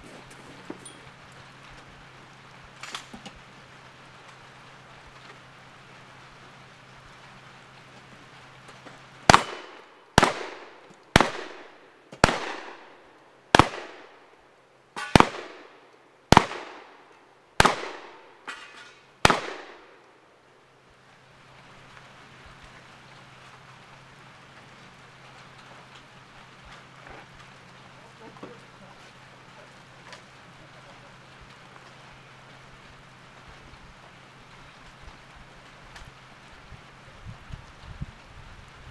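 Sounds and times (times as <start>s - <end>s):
loud gunshots with echo: 9.3s - 12.9s, 13.6s - 14.1s, 15.0s - 15.7s, 16.3s - 16.9s, 17.6s - 18.3s, 19.2s - 19.9s.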